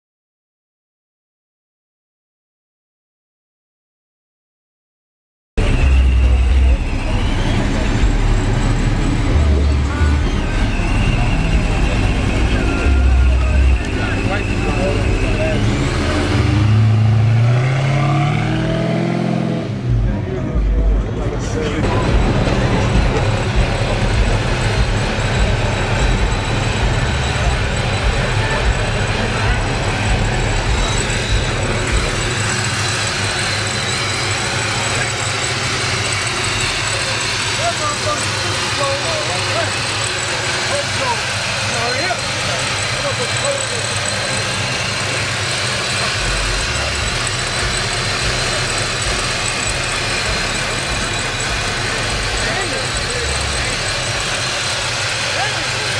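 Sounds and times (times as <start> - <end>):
supercharged car engine revving: 5.6 - 55.9.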